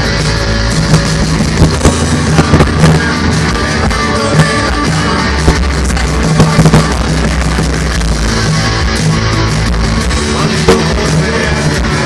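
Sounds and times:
loud live rock band: 0:00.0 - 0:12.0
drum hits: 0:00.9 - 0:03.2, 0:10.4 - 0:11.3.

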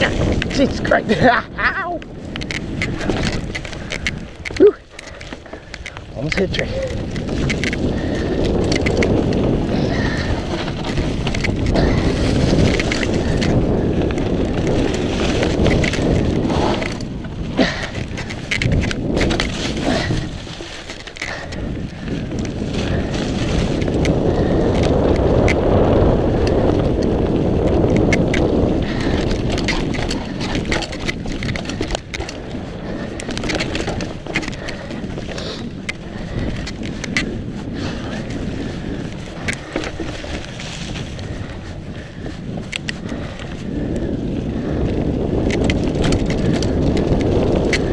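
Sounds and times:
bike tyres rolling over leaves and dirt: 0:00.0 - 0:47.9
wind rushing over microphone: 0:00.0 - 0:47.9.

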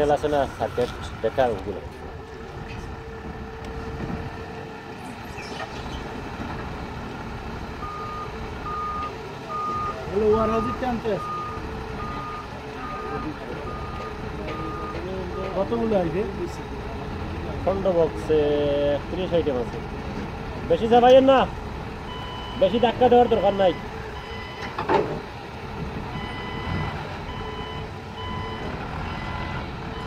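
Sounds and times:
forklift engine running: 0:00.0 - 0:30.0
reversing alarm beeping: 0:07.8 - 0:15.7, 0:22.1 - 0:24.8, 0:26.2 - 0:30.0.

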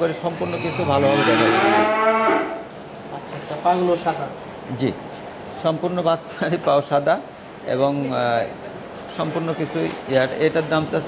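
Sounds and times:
cow mooing: 0:00.4 - 0:02.7.

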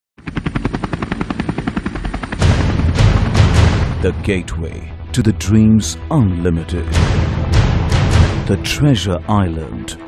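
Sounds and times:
helicopter rotor chopping: 0:00.2 - 0:09.0.

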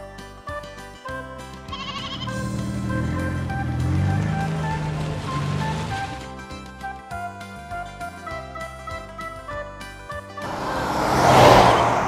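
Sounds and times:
plinking children's music: 0:00.0 - 0:11.4
noisy wavering sound effect: 0:10.4 - 0:12.0.

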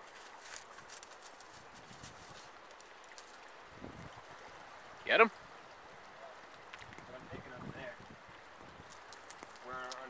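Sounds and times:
creek water rushing: 0:00.0 - 0:10.0
light irregular clicks and taps: 0:08.9 - 0:10.0.

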